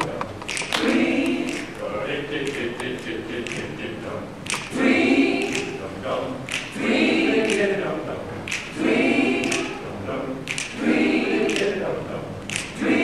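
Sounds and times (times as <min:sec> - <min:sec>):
choir singing a cappella: 0:00.0 - 0:13.0.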